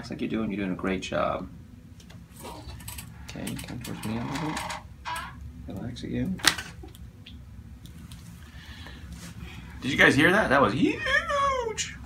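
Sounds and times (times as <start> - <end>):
person speaking: 9.8 - 12.0.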